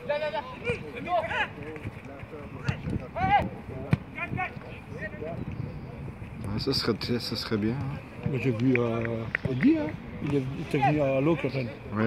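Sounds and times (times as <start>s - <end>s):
football being kicked: 2.6s - 3.0s.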